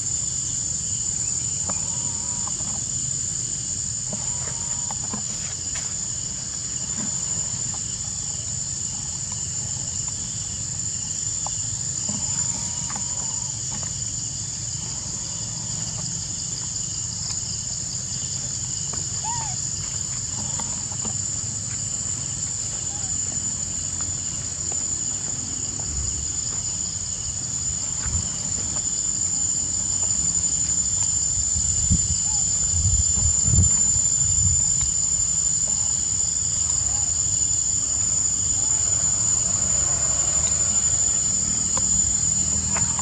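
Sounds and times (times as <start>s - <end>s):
insects droning: 0.0s - 43.0s.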